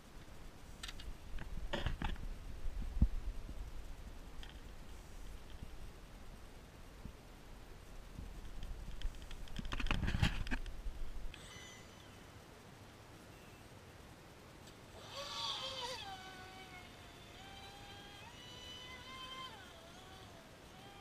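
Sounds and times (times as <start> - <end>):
electric motor whine: 11.4 - 12.2, 14.9 - 21.0.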